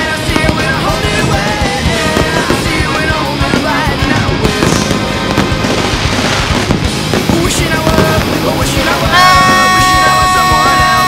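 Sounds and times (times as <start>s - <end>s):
fireworks bangs and crackling: 0.0s - 11.0s
loud rock music: 0.0s - 11.0s.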